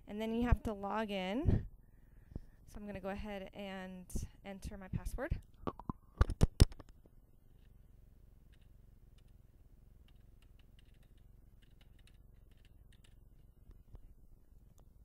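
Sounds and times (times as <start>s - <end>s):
keyboard typing: 10.0s - 13.2s.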